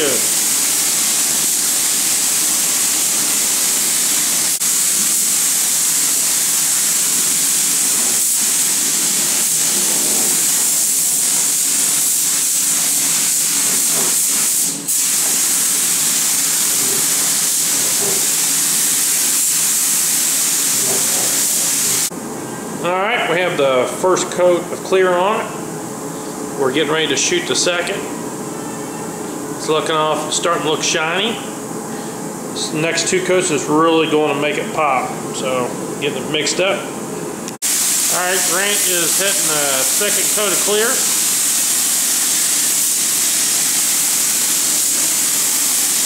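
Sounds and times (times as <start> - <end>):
spray gun hissing: 0.0 - 22.1, 37.6 - 46.0.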